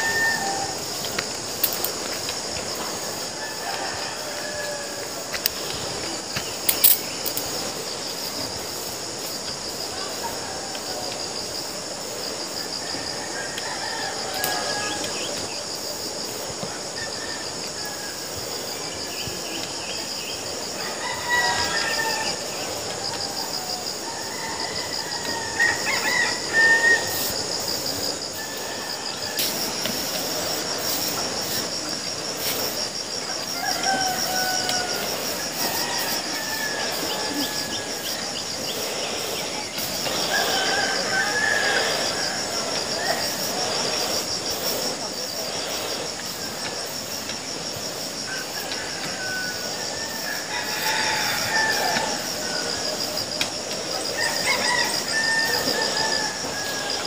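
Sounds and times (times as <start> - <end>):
insects buzzing: 0.0 - 57.0.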